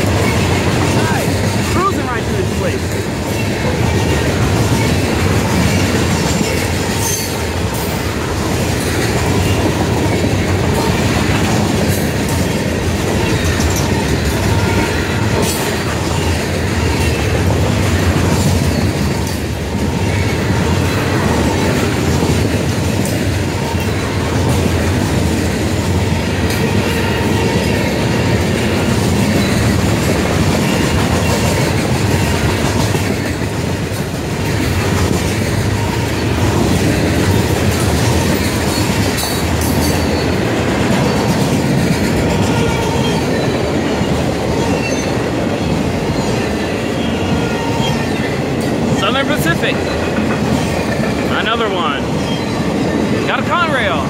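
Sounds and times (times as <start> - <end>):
freight train wheels rumbling: 0.0 - 54.0.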